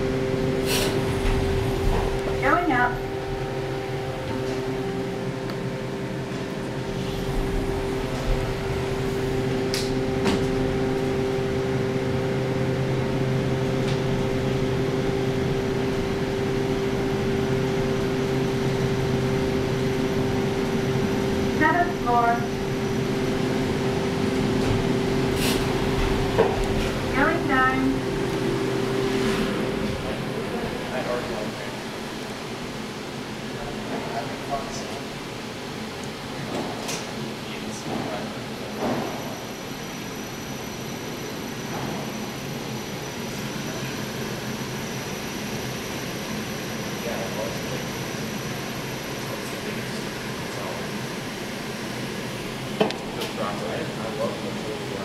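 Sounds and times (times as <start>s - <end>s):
elevator car humming: 0.0s - 55.0s.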